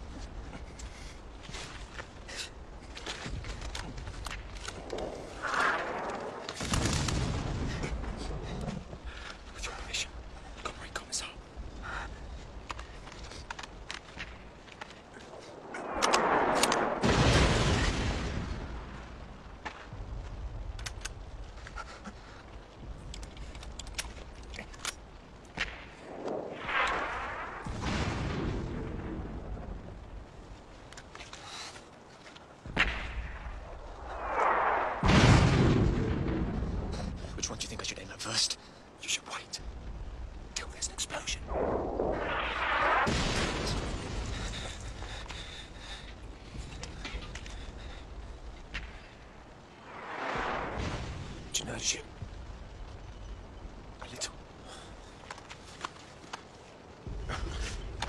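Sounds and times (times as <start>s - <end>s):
heavy explosions: 4.0s - 9.2s, 15.2s - 21.5s, 25.5s - 30.7s, 32.6s - 37.4s, 41.3s - 53.8s.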